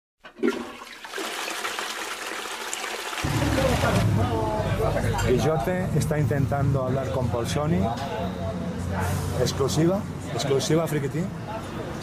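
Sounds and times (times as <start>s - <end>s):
water-like rushing noise: 3.2s - 4.5s
deep rumbling sound: 3.2s - 6.4s.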